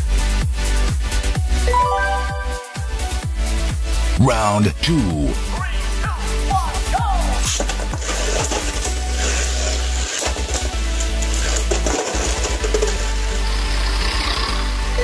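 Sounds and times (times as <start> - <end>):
electronic music: 1.6 - 4.3
spinning tops whirring and colliding: 7.5 - 13.4.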